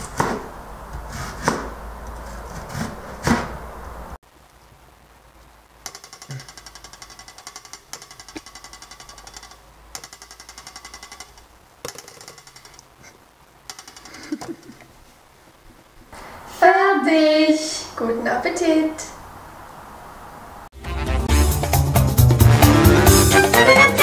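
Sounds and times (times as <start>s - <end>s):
serrated knife cutting a potato: 0.0s - 3.6s.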